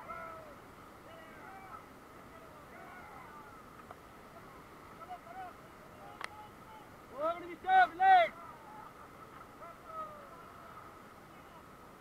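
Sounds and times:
distant shouting voices: 0:00.0 - 0:11.8
low background hiss: 0:00.0 - 0:12.0.

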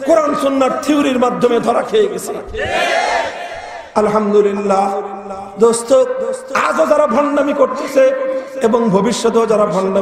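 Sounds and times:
crowd of men calling out: 0:02.6 - 0:03.9.

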